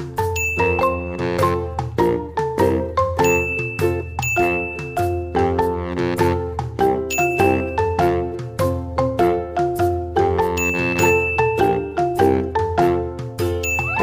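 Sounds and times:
bell-like struck notes: 13.6s - 14.0s.

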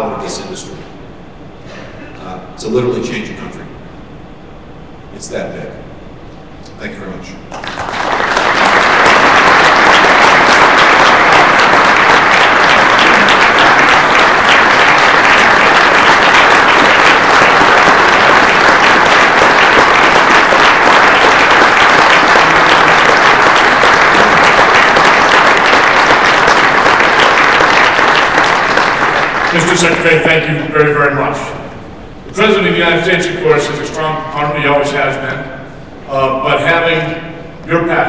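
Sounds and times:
audience applauding: 7.5s - 30.3s.

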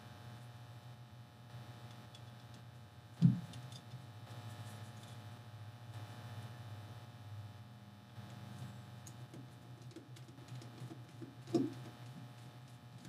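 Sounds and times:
loud knock: 3.2s - 3.5s.

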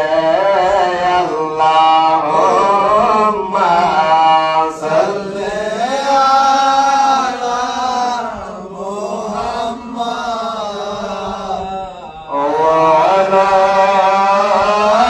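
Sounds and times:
men chanting together: 0.0s - 15.0s.

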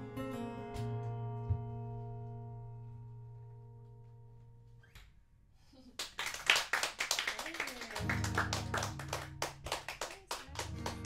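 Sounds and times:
acoustic guitar low notes: 0.0s - 5.3s
audience clapping: 5.9s - 11.0s.

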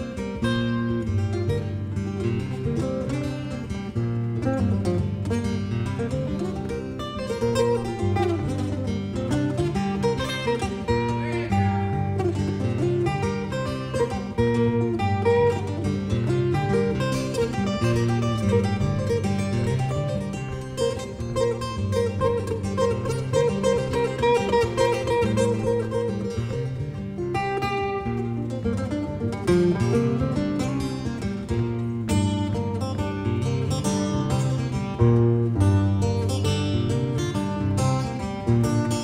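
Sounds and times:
acoustic guitars playing: 0.0s - 39.0s.

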